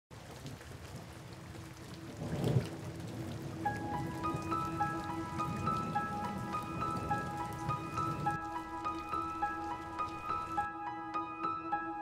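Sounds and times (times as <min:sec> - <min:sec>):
steady rain: 0:00.1 - 0:10.7
low rumble of thunder: 0:00.2 - 0:10.6
soft background music: 0:02.0 - 0:12.0.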